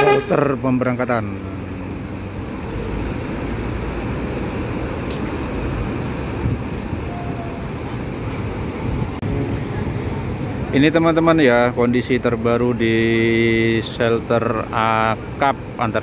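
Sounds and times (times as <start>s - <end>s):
bus diesel engine running: 0.0s - 16.0s
traffic noise: 0.0s - 16.0s.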